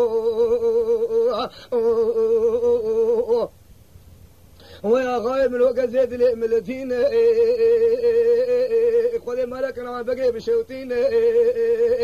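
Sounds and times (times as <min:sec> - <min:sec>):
man singing unaccompanied: 0:00.0 - 0:03.6, 0:04.6 - 0:12.0.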